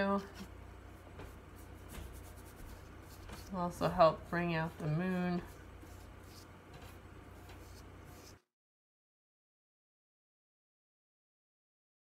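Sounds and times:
brush strokes on paper: 0.3 - 8.5.

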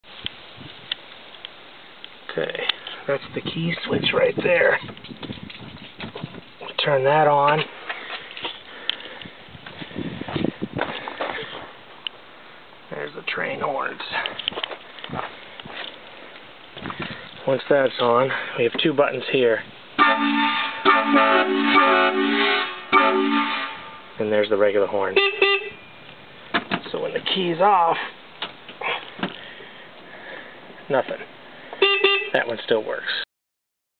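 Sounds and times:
footsteps: 4.8 - 6.5, 7.6 - 11.8, 14.1 - 17.4
handling knocks and thumps: 4.8 - 6.5, 26.5 - 27.0.

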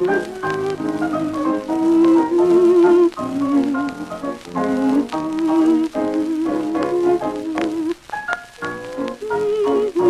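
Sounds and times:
lead instrument long held notes: 0.0 - 8.0
dance band music on old record: 0.0 - 10.0.

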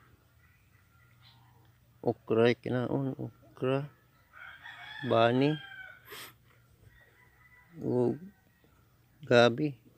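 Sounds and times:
man speaking: 2.0 - 4.0, 9.2 - 9.8
rooster crowing: 4.3 - 6.2, 6.9 - 8.8.

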